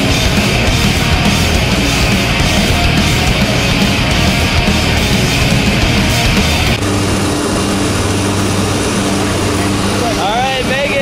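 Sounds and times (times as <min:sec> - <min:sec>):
background music: 0:00.0 - 0:06.8
propeller engines droning: 0:00.0 - 0:11.0.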